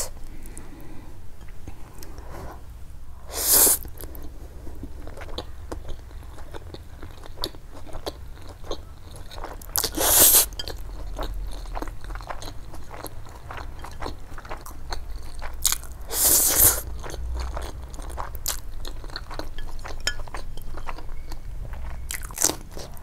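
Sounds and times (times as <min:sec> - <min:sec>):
chewing noodles: 0:03.7 - 0:23.0.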